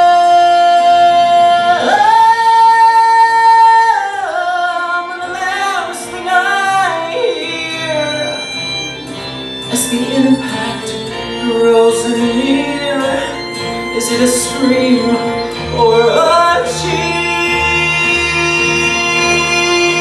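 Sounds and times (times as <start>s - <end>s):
young man singing: 0.0s - 9.0s, 9.7s - 20.0s
instrumental accompaniment: 0.0s - 20.0s.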